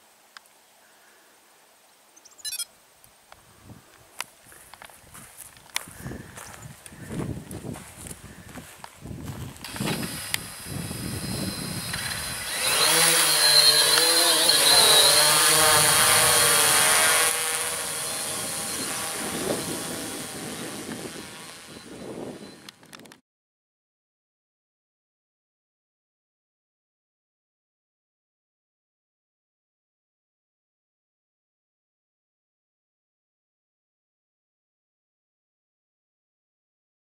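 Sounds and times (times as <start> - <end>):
drone propellers whining: 9.6 - 22.9.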